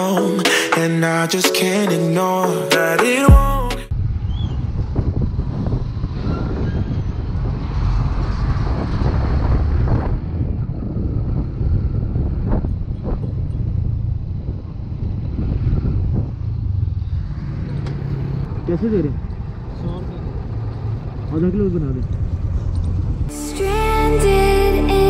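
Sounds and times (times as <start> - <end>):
wind noise on microphone: 3.9 - 18.6, 22.1 - 23.3.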